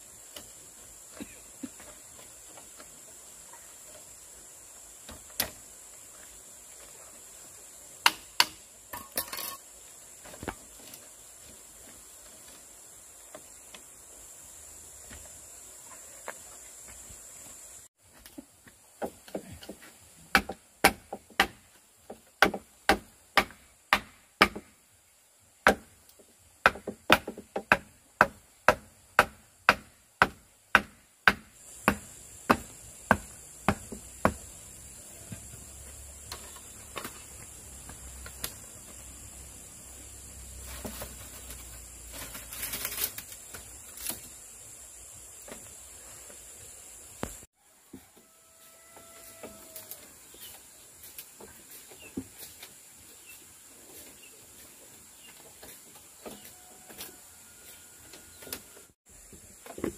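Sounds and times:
high insect drone: 0.0s - 17.9s, 31.3s - 47.5s
sharp knocks on bamboo: 8.0s - 9.5s, 19.0s - 24.8s, 25.6s - 34.5s.

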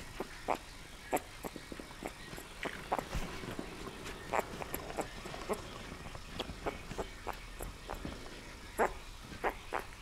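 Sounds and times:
puppy squeaking and whimpering: 4.2s - 8.1s, 8.7s - 10.0s.

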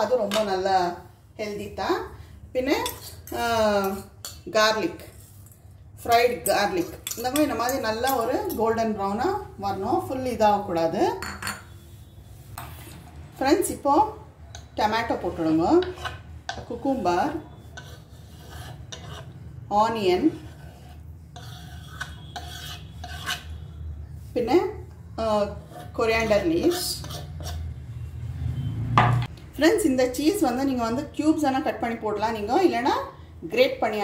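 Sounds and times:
spoon scraping bowl: 2.6s - 13.8s, 14.6s - 28.7s
metal spoon clinking glass bowl: 6.4s - 8.7s.

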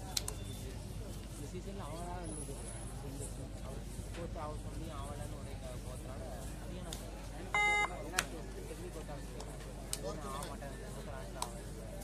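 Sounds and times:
crowd voices: 0.0s - 12.0s
short beep: 7.6s - 8.0s.

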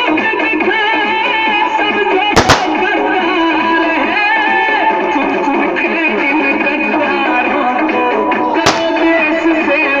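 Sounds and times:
music playing: 0.0s - 10.0s
firecracker bang: 2.4s - 3.1s, 8.6s - 9.5s.

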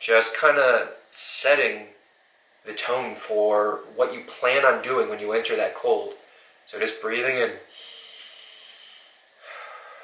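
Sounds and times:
man breathing in deeply: 7.7s - 10.0s.

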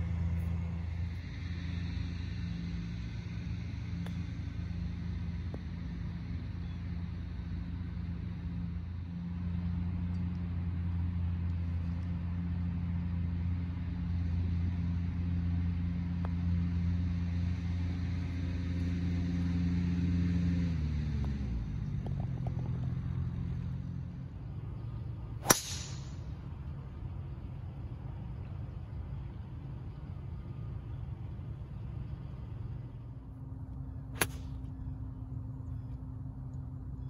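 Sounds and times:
engine humming: 0.0s - 37.0s
golf club striking ball: 25.4s - 26.3s, 34.2s - 34.6s.

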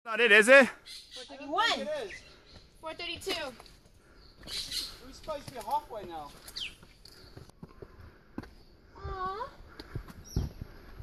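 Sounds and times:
footsteps on stone steps: 2.3s - 11.0s.

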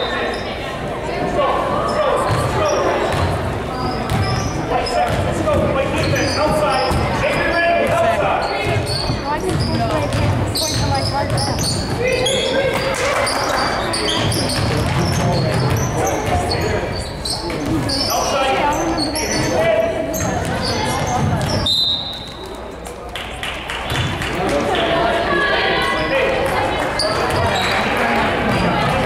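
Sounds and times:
sneakers squeaking: 0.0s - 0.7s, 1.6s - 22.9s, 25.8s - 29.0s.

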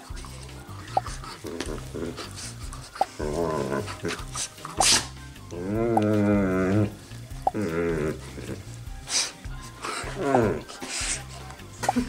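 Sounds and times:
dog play vocalizations: 0.0s - 12.0s.

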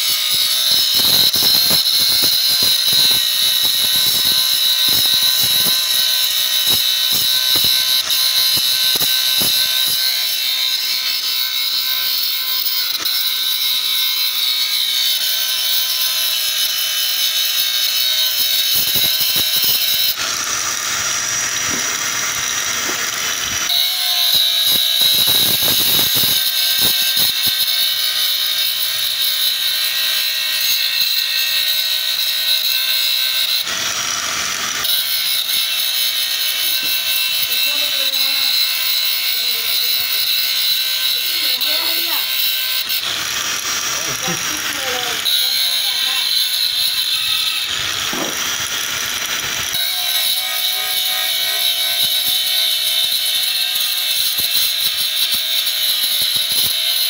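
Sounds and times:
angle grinder grinding metal: 0.0s - 57.0s.

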